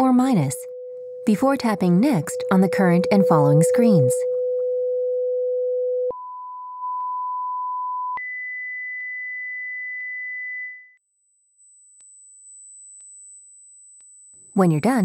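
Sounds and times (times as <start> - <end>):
sine test tones: 0.3 - 15.0.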